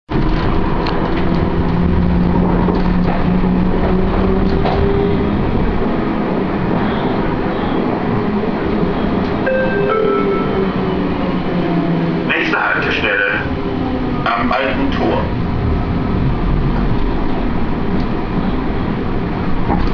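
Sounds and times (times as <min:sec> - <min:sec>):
tram wheels rumbling on rails: 0:00.1 - 0:19.9.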